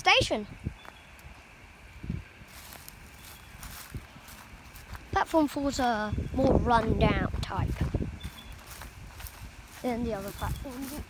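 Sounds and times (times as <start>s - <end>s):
footsteps on dry grass: 0.5s - 11.0s.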